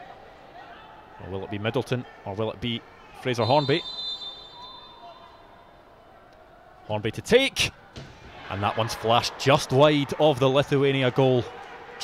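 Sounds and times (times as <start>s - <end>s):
murmur of stadium crowd: 0.0s - 12.0s
high whistle tone: 3.4s - 5.6s.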